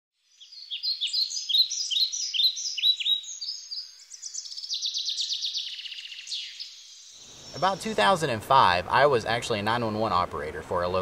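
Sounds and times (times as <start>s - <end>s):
songbird chirps and trill: 0.2s - 9.9s.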